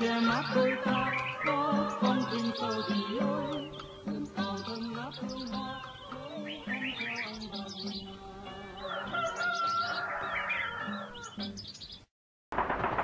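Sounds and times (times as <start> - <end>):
soft music: 0.0 - 11.8
bird chirps: 0.0 - 12.1.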